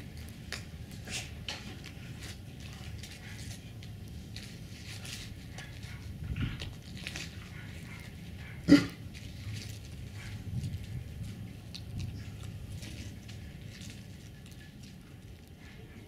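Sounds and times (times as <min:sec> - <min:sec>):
puppy gnawing a log: 0:00.0 - 0:16.0.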